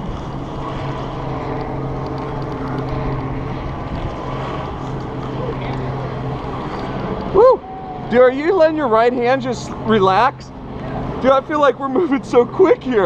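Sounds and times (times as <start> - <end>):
rope rushing through descender: 0.0 - 12.5
low hum: 0.0 - 13.0.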